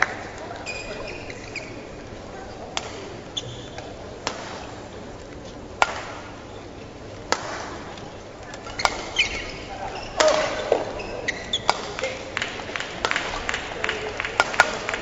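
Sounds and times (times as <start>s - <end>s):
murmur of large hall: 0.0s - 15.0s
shoes squeaking on court: 0.6s - 2.0s, 3.3s - 3.9s, 8.5s - 12.2s
racket striking shuttlecock: 5.8s - 6.3s, 7.3s - 7.8s, 10.2s - 15.0s.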